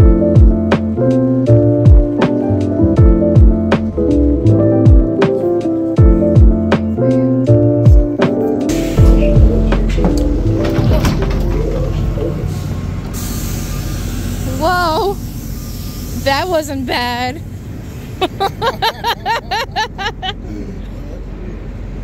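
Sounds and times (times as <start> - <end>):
music: 0.0 - 12.4
bus engine rumble: 0.0 - 22.0
city street noise: 0.0 - 22.0.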